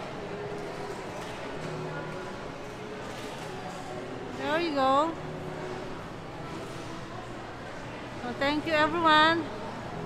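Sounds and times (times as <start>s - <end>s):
murmur of voices indoors: 0.0s - 10.0s.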